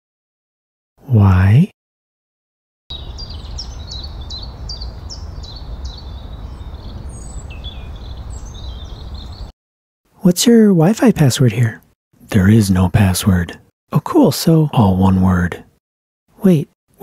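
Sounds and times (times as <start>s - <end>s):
small birds chirping: 2.9s - 9.5s.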